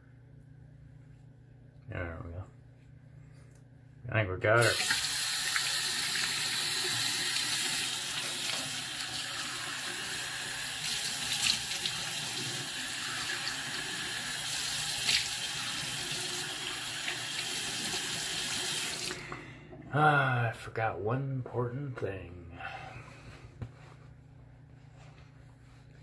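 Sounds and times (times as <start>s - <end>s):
sink tap running: 4.6s - 19.2s.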